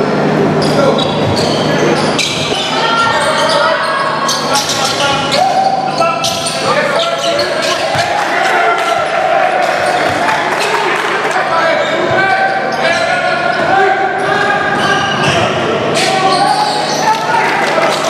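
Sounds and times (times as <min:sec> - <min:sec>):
voices of players and spectators: 0:00.0 - 0:18.0.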